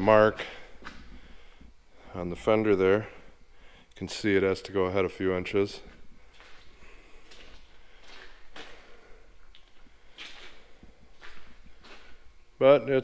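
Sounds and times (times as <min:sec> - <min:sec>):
low steady hum: 0:00.0 - 0:13.0
soft footsteps on concrete: 0:05.7 - 0:12.4.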